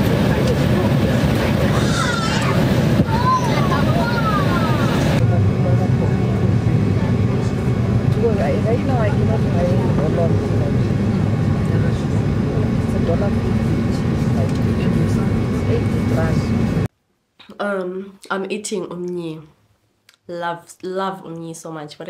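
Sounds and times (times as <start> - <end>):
faint voices: 0.0 - 16.7
low rumble of engines and cabin air: 0.0 - 16.9.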